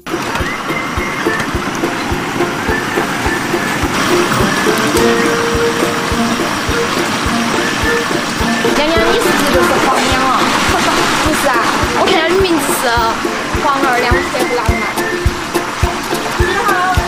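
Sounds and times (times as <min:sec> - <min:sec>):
background music with steady beat: 0:00.0 - 0:17.0.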